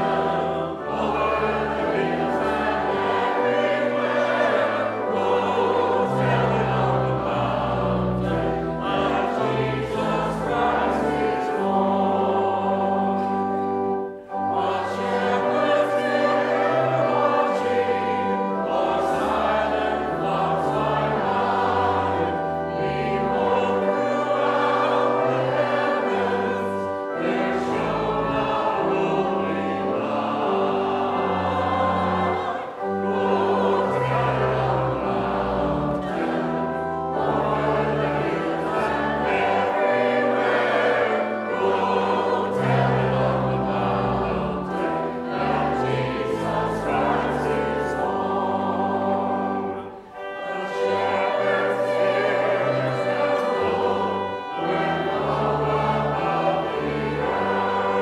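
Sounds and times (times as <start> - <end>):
choir and congregation singing hymn: 0.0 - 58.0
pipe organ with held bass notes: 0.0 - 58.0.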